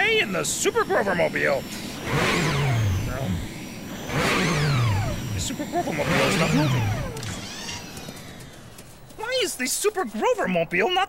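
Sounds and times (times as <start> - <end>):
engine revving: 0.0 - 9.2.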